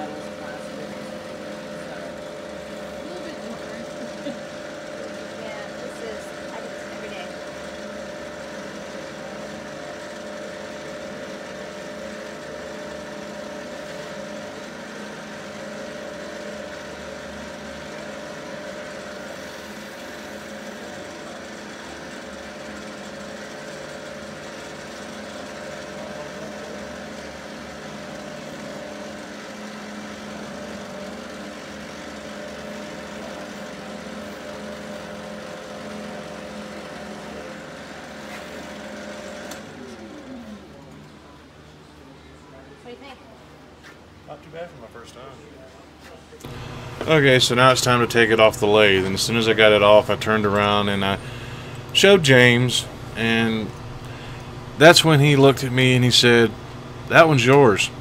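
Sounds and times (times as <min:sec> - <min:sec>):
wood lathe motor hum: 0:00.0 - 0:41.8, 0:46.4 - 0:58.0.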